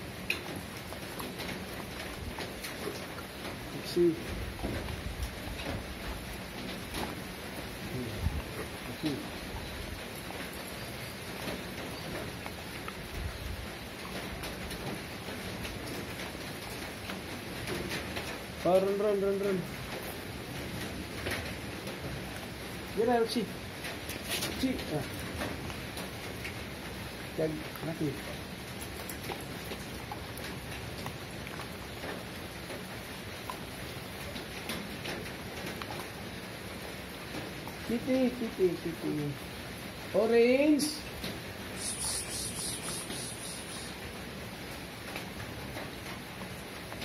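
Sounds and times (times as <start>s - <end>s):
animals crunching dry food: 0.3s - 4.0s, 27.6s - 36.3s
steady background hiss: 35.2s - 47.0s
steady hiss: 40.8s - 44.8s.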